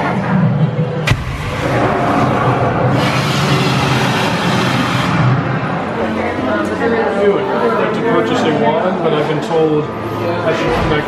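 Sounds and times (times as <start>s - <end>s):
low rumble: 0.0s - 6.5s
rushing burst of fire: 1.0s - 5.8s.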